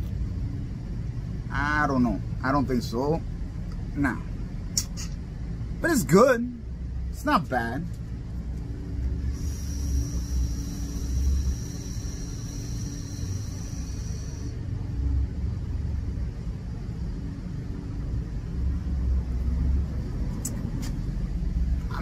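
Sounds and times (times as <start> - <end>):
low rumble: 7.9 - 22.0
vape coil hissing: 9.2 - 14.6.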